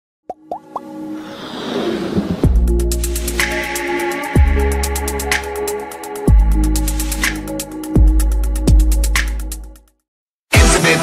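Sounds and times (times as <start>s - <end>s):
pitch-bending electronic pops: 0.3s - 0.9s.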